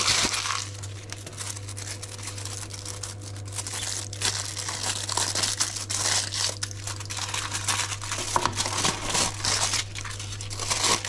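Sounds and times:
foil wrapper crinkling: 0:00.0 - 0:11.0
steady low hum: 0:00.0 - 0:11.0.

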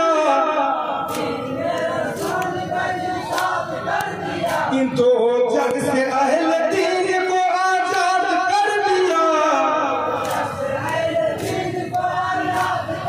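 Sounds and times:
men singing together: 0:00.0 - 0:05.0, 0:05.6 - 0:13.0.

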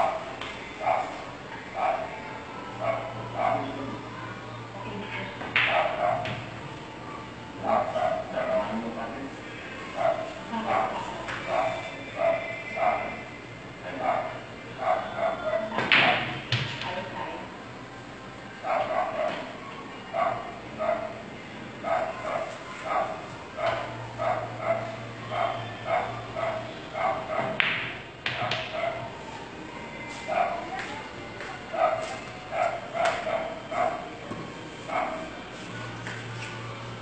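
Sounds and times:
dog barking: 0:00.0 - 0:01.2, 0:01.8 - 0:02.2, 0:02.8 - 0:03.8, 0:05.6 - 0:06.4, 0:07.7 - 0:08.7, 0:10.0 - 0:13.2, 0:14.0 - 0:16.3, 0:18.6 - 0:21.2, 0:21.8 - 0:27.6, 0:28.3 - 0:29.1, 0:30.3 - 0:30.7, 0:31.7 - 0:34.1, 0:34.9 - 0:35.3.

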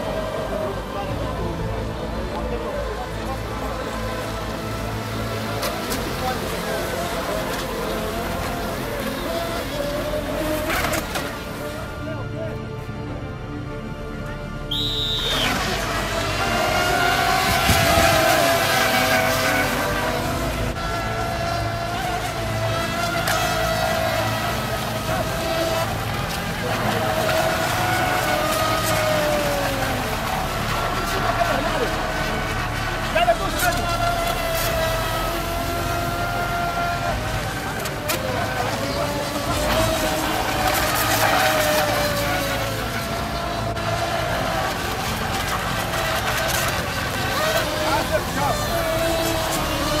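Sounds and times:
rc boat motor whine: 0:00.0 - 0:50.0
hull and spray rushing: 0:14.8 - 0:50.0.

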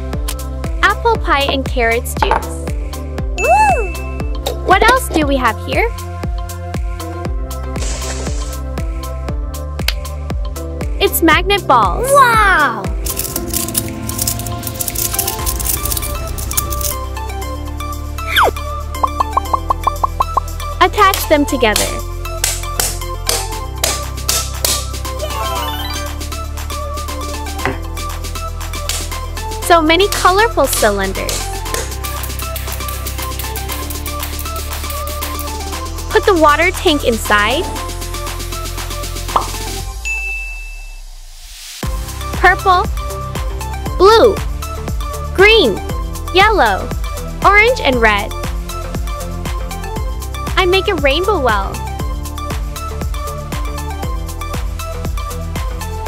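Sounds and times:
background music with held notes: 0:00.0 - 0:56.0
high steady ding tone: 0:03.4 - 0:04.4, 0:40.0 - 0:41.0
magnetic metal balls clicking: 0:19.0 - 0:20.4.

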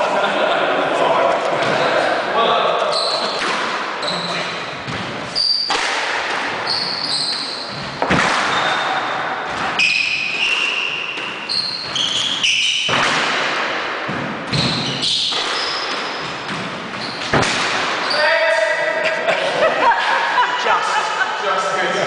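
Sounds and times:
shoes squeaking on wooden floor: 0:02.9 - 0:05.8, 0:06.6 - 0:13.0, 0:14.5 - 0:18.2
squash ball hitting rackets and walls: 0:03.2 - 0:18.9.

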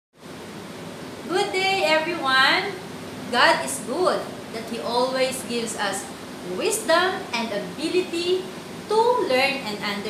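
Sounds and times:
woman speaking a greeting: 0:01.3 - 0:10.0.

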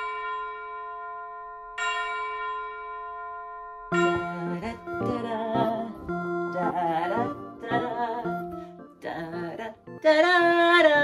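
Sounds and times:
bell ringing: 0:00.0 - 0:05.8.

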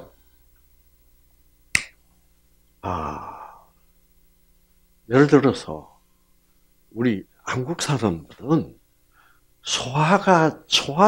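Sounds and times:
sharp click: 0:01.7 - 0:02.0.

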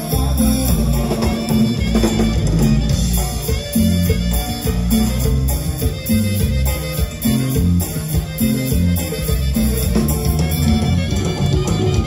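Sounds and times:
bass: 0:00.0 - 0:12.0
drums: 0:00.0 - 0:12.0
guitar: 0:00.0 - 0:12.0
live band playing: 0:00.0 - 0:12.0.

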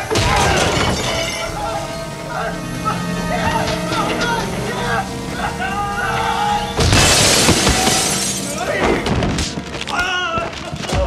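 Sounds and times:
debris shattering and breaking: 0:00.0 - 0:11.0.

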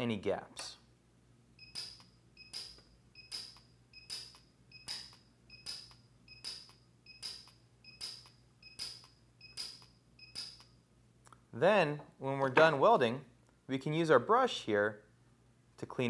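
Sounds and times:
welder beep: 0:01.6 - 0:10.8
welding arc snap: 0:01.7 - 0:10.7.

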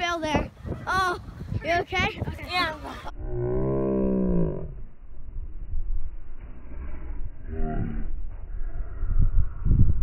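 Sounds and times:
steady low rumble: 0:00.2 - 0:10.0.

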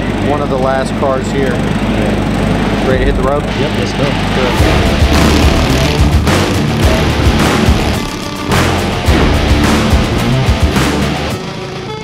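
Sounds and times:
music with heavy beat and bass: 0:04.1 - 0:12.0.

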